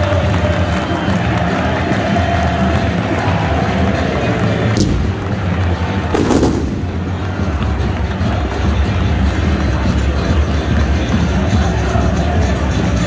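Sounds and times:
stadium crowd: 0.0 - 13.0
fireworks going off: 4.7 - 7.8
sharp bang: 4.8 - 5.3, 6.2 - 7.2.

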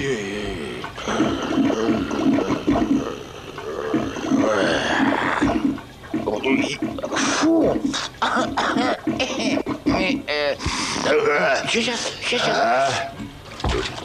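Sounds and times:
water sloshing in toilet bowl: 1.0 - 10.3.

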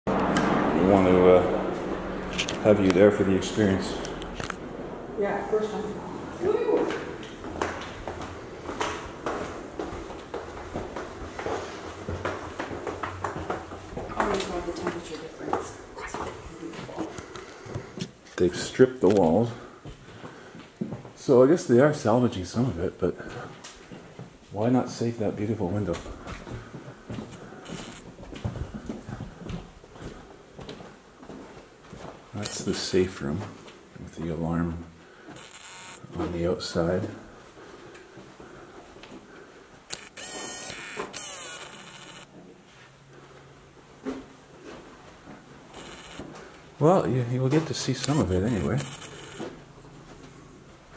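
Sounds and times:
footsteps on hardwood floor: 6.2 - 18.2, 19.8 - 21.2, 25.7 - 34.4, 40.2 - 46.6
door creaking open: 27.6 - 28.1, 35.3 - 36.1, 39.9 - 42.3, 45.7 - 46.5, 47.6 - 49.6.

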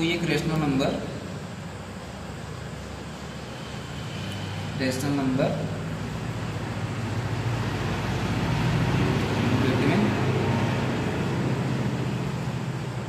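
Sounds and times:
motor vehicle engine hum: 5.7 - 13.0.

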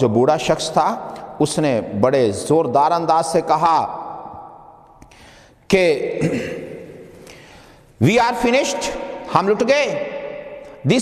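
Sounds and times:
man talking: 0.0 - 4.0, 5.7 - 6.8, 8.0 - 10.1, 10.8 - 11.0.

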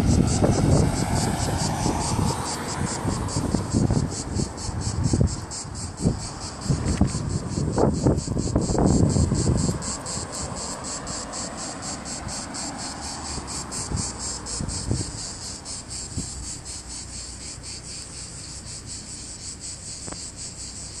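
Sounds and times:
cicadas buzzing: 0.0 - 21.0
faint low traffic rumble: 0.0 - 21.0.

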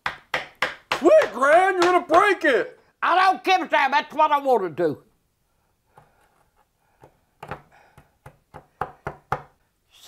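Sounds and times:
fist knocking block on wooden table: 7.4 - 9.6.

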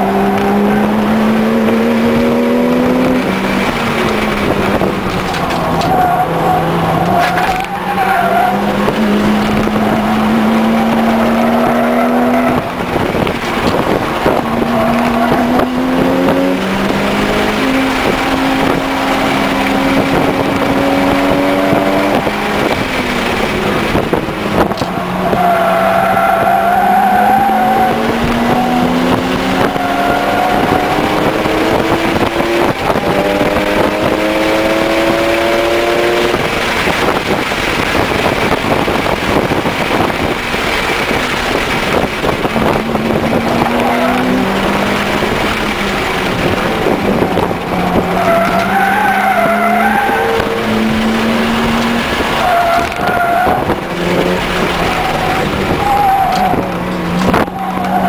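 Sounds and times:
car engine revving: 0.0 - 58.0
tyres squealing: 3.4 - 12.9, 24.7 - 31.2, 43.4 - 58.0.

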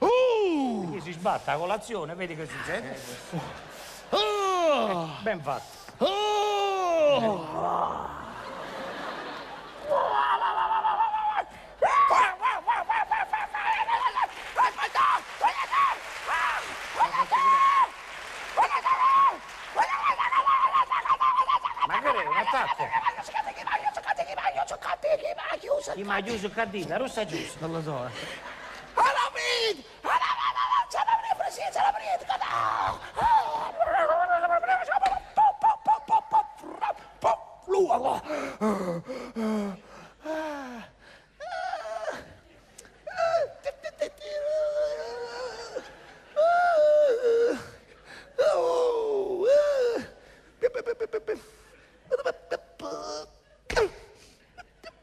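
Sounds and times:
man wailing: 6.0 - 8.5, 9.9 - 17.8, 18.6 - 25.8, 29.0 - 39.7, 43.1 - 47.8, 48.4 - 51.5, 52.1 - 54.0.

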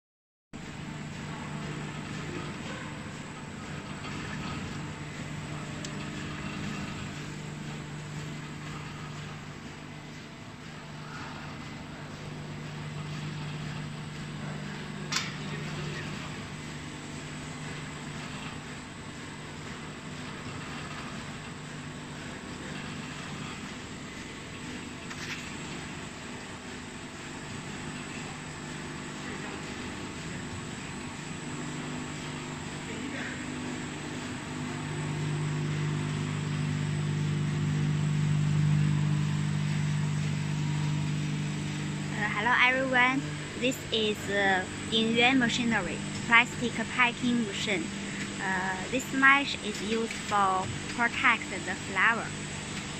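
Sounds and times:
machine running with low hum: 0.6 - 52.9.

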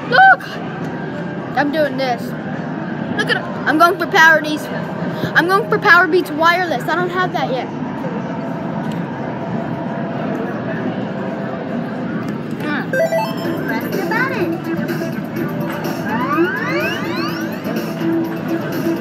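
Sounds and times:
background chatter: 0.0 - 19.0
electronic arcade music: 12.9 - 19.0
rising electronic sweeps: 13.0 - 18.4.

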